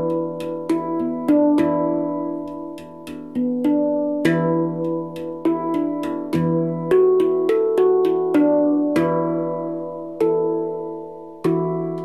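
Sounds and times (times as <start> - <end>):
handpan notes: 0.0 - 12.0.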